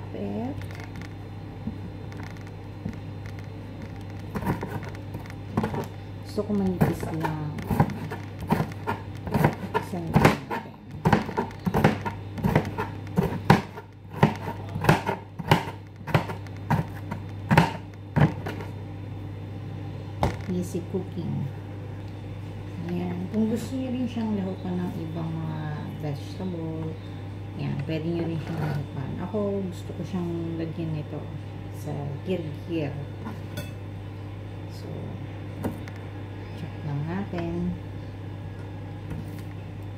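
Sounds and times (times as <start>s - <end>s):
steady low hum: 0.0s - 39.9s.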